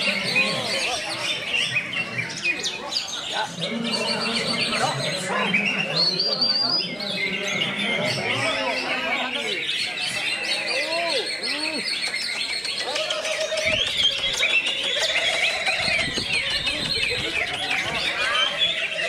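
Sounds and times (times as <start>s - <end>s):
birds chirping and trilling: 0.0s - 19.0s
people's voices: 0.0s - 19.0s.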